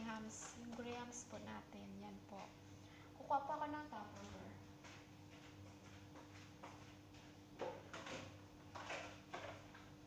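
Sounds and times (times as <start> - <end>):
steady low hum: 0.0 - 10.0
plastic containers clattering: 7.6 - 9.9.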